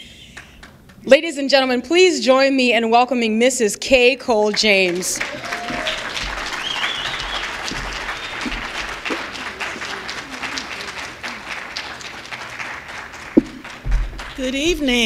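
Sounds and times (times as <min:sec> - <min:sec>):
audience applauding: 0:04.5 - 0:15.0
sharp knock: 0:13.4 - 0:14.3.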